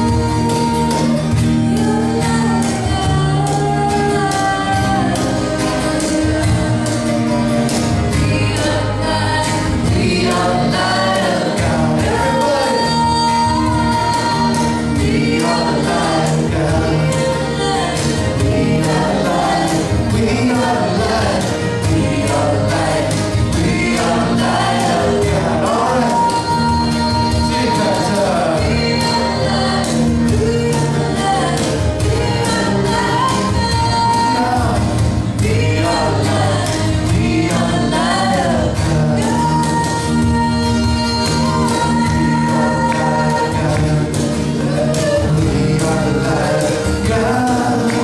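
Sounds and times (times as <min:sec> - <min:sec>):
backing voices: 0:00.0 - 0:48.0
strummed acoustic guitars: 0:00.0 - 0:48.0
woman and man singing: 0:00.0 - 0:48.0.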